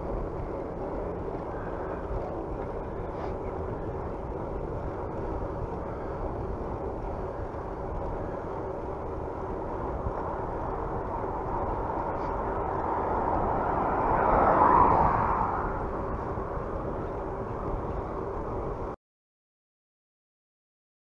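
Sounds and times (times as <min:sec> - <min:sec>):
bicycle road noise on asphalt: 0:00.0 - 0:19.0
wind rushing over microphone: 0:00.0 - 0:19.0.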